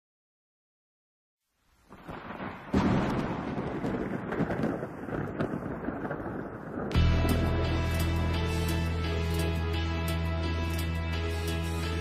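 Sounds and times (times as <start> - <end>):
rain: 1.5 - 12.0
wind: 1.6 - 12.0
thunder rumbling: 1.9 - 8.6.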